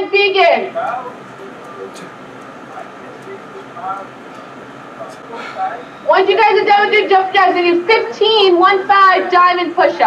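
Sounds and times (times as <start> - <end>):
faint scattered voices: 0.0 - 10.0
steady low hum: 0.0 - 10.0.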